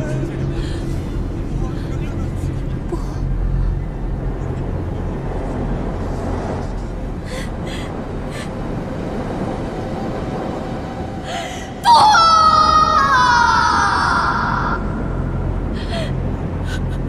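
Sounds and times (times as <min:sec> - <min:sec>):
steady rushing background: 0:00.0 - 0:17.0
gasping breaths: 0:15.7 - 0:17.0.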